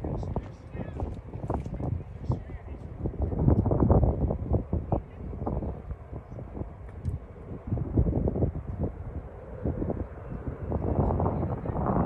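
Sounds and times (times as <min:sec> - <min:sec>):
wind buffeting microphone: 0:00.0 - 0:12.0
faint indistinct voices: 0:01.9 - 0:03.6.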